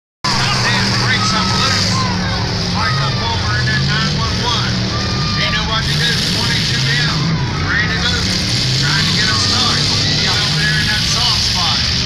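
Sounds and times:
car engines running: 0:00.2 - 0:12.0
people's voices: 0:00.2 - 0:12.0.

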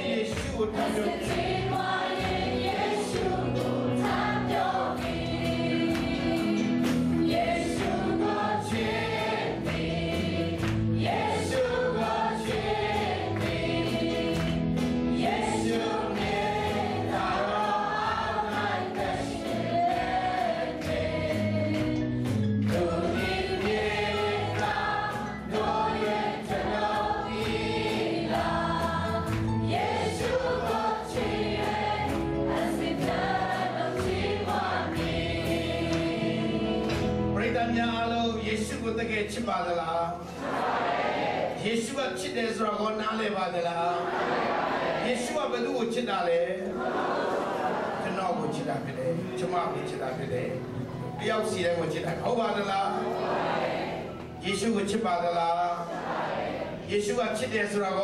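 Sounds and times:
people singing worship song: 0:00.0 - 0:49.0, 0:51.2 - 0:58.0.

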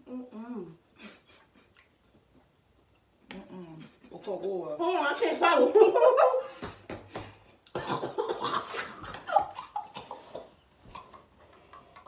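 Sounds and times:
women laughing: 0:05.5 - 0:06.5.

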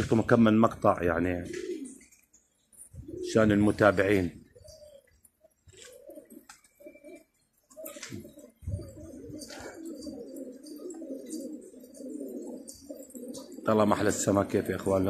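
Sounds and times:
pigeons cooing: 0:00.0 - 0:15.0.

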